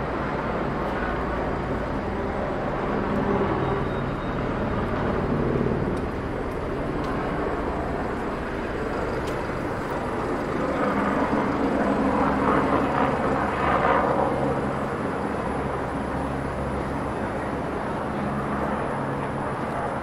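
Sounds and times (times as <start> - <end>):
bus engine: 0.0 - 10.6.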